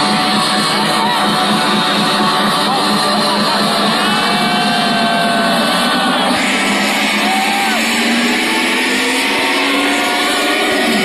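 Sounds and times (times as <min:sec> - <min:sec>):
loud trance music: 0:00.0 - 0:11.0.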